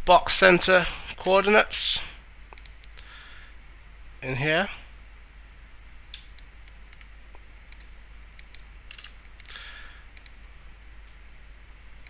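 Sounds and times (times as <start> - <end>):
faint low hum: 0.0 - 12.0
mouse and keyboard clicks: 7.7 - 9.6.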